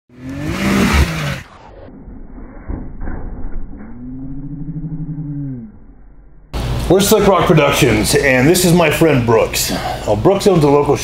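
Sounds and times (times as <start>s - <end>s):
vehicle engine revving: 0.1s - 1.9s
low engine rumble: 1.4s - 10.3s.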